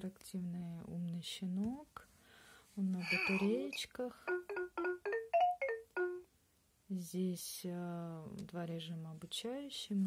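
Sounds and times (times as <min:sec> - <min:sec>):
toy electronic bell-like jingle: 0:03.0 - 0:06.2.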